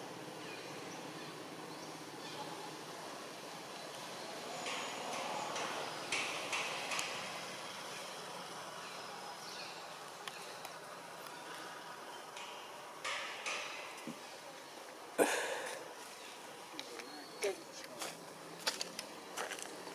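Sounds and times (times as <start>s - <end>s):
steady background hiss: 0.0s - 19.9s.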